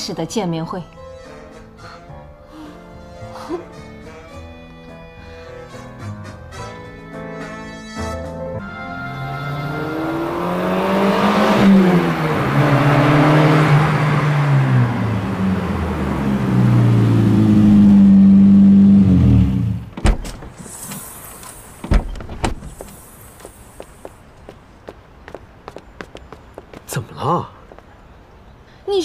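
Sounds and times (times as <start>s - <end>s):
sports car engine: 9.1s - 20.0s
car doors thudding: 19.6s - 23.1s
brief hiss: 20.6s - 21.9s, 22.6s - 24.1s.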